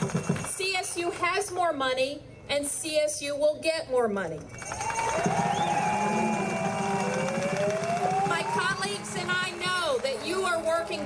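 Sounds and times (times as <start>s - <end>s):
siren wailing: 4.8s - 10.0s.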